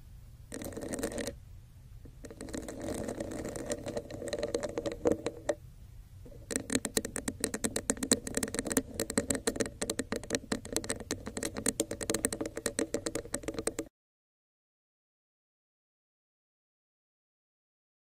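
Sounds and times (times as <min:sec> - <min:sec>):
fingernails tapping on cup: 0:00.5 - 0:01.4, 0:02.2 - 0:05.6, 0:06.3 - 0:13.9.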